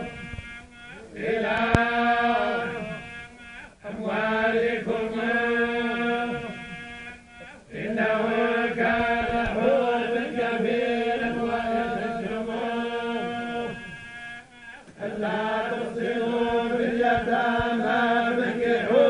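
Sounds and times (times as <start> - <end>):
men chanting together: 0.9 - 6.8, 7.4 - 14.0, 14.8 - 19.0.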